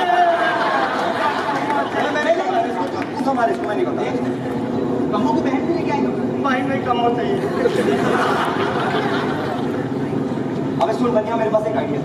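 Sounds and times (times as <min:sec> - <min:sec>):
actors talking on stage: 0:00.0 - 0:12.0.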